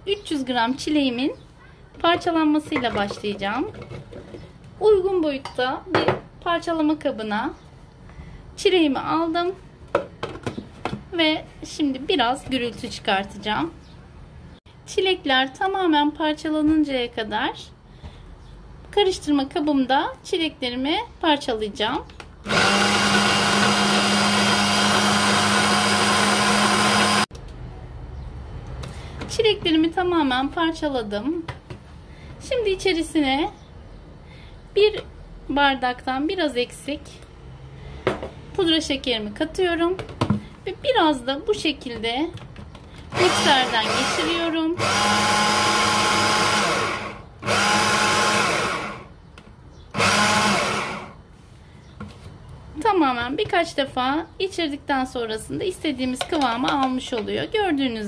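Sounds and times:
hand blender motor chopping: 0:22.5 - 0:27.3, 0:43.1 - 0:49.1, 0:50.0 - 0:51.2.

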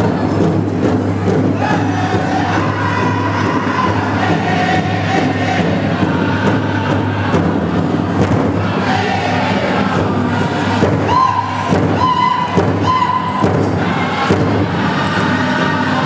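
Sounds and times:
large drum steady beat: 0:00.0 - 0:16.0
high chanted vocals: 0:01.3 - 0:16.0.

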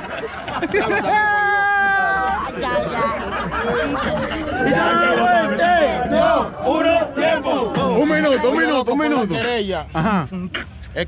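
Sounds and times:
crowd shouting and yelling: 0:00.6 - 0:09.8.

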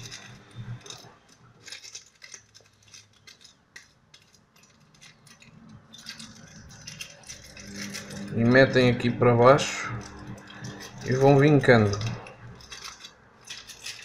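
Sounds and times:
kitchen foil crinkling: 0:00.0 - 0:14.0.

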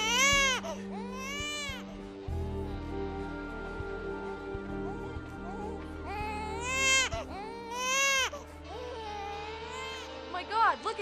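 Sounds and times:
baby crying: 0:00.0 - 0:02.4, 0:04.9 - 0:10.2.

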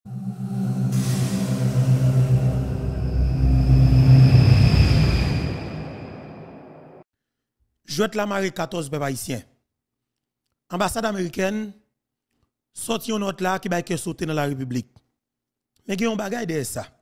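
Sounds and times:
sustained low chord: 0:00.1 - 0:07.0
whoosh: 0:00.1 - 0:07.0.

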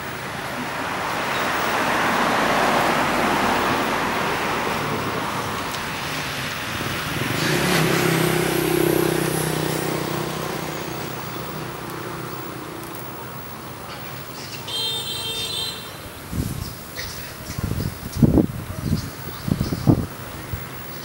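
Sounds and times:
vehicle engine hum: 0:00.0 - 0:14.7
road traffic passing: 0:00.0 - 0:21.0.

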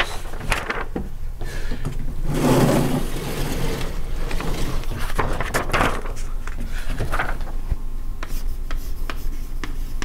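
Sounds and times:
chalkboard panel rumbling on track: 0:02.3 - 0:06.2.

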